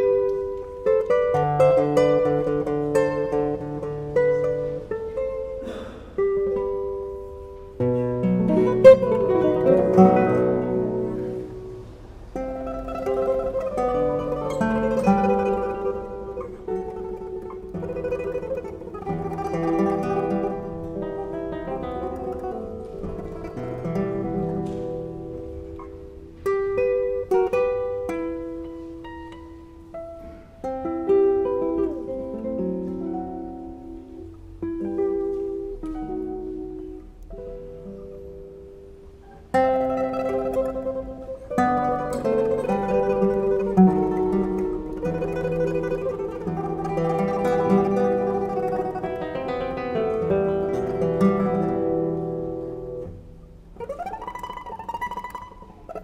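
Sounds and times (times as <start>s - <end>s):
classical guitars playing: 0.0s - 56.0s
breaths: 5.6s - 6.2s, 30.1s - 30.6s.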